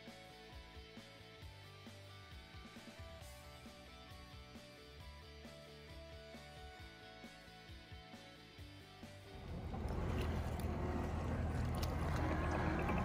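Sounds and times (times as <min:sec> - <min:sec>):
soft background music: 0:00.0 - 0:13.0
diesel engine running loud: 0:09.3 - 0:13.0.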